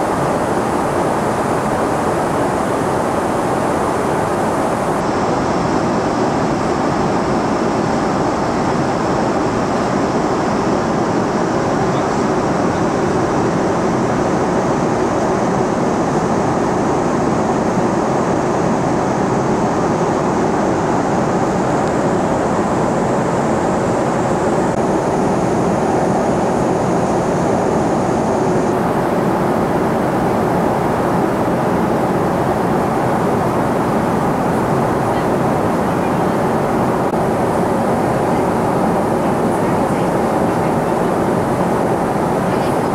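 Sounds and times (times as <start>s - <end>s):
airliner cabin noise: 0.0s - 42.9s.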